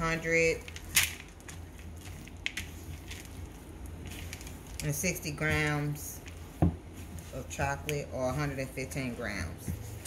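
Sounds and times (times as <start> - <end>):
spatula squishing cookie dough: 0.0 - 10.0.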